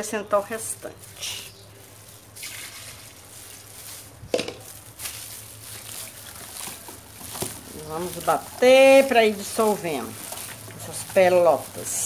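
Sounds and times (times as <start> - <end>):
wet sloshing of soap paste: 1.8 - 12.0.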